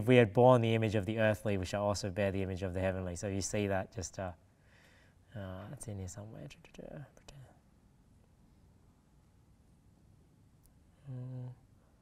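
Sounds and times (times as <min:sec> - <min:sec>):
man's voice murmuring: 0:11.0 - 0:11.6.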